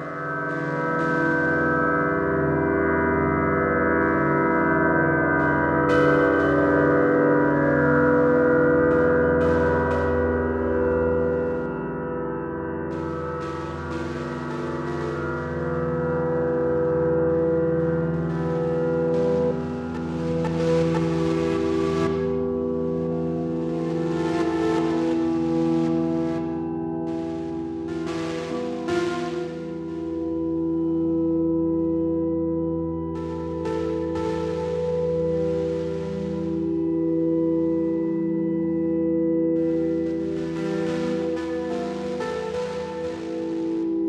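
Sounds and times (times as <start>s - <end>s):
electronic drone music: 0.0s - 44.0s.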